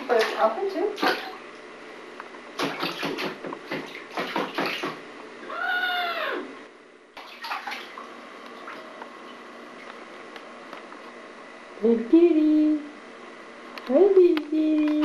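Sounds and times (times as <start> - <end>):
bathwater splashing: 0.0 - 1.6, 2.6 - 5.0, 7.2 - 9.9.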